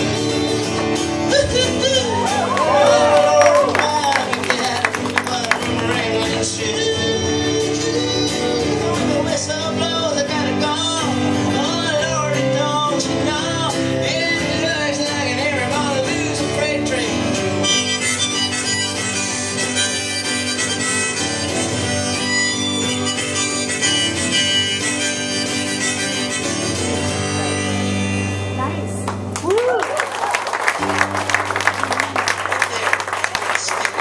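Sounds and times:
strummed acoustic guitar: 0.0 - 29.3, 30.8 - 34.0
harmonica playing: 17.2 - 28.6.

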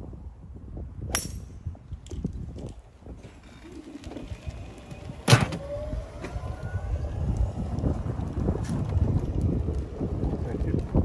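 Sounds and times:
golf club striking ball: 1.1 - 1.6.

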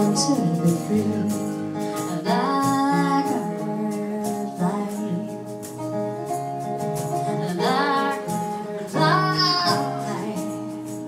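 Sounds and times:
woman singing: 0.0 - 5.8, 7.1 - 11.0.

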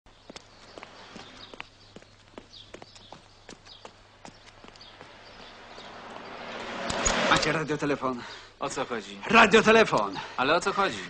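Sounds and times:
footsteps on pavement: 0.1 - 7.3.

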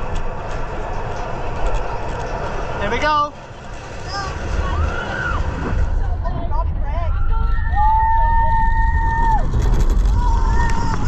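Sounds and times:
roller coaster track rumble: 0.0 - 11.0
riders screaming: 4.1 - 5.8, 7.1 - 11.0
riders whooping: 4.1 - 6.0, 7.1 - 11.0.

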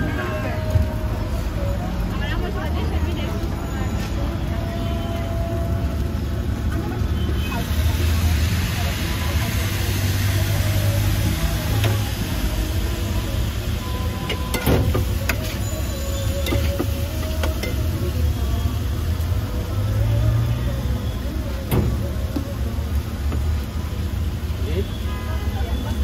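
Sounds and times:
low traffic rumble: 0.0 - 26.0.

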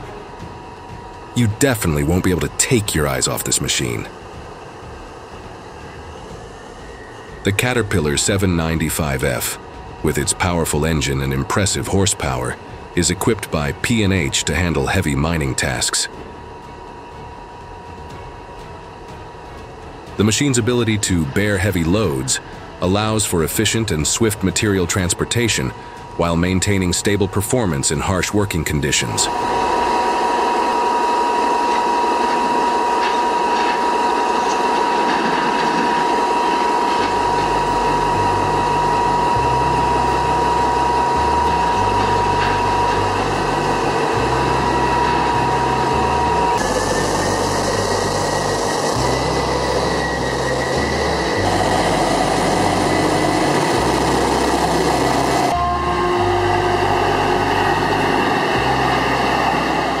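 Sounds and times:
heavy machinery noise: 0.0 - 60.0
high whine: 0.0 - 60.0.

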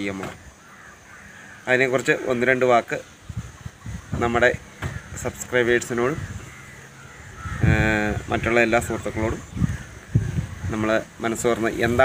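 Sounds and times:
man talking: 1.7 - 3.1, 4.1 - 6.4, 7.6 - 9.6, 10.6 - 12.0.

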